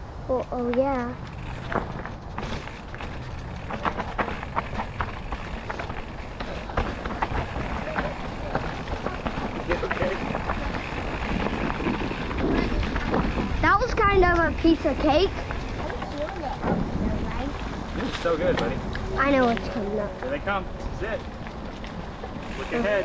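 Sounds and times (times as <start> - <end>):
bike rattling over stones: 0.4 - 23.0
bike tyres rumbling on gravel: 1.0 - 23.0.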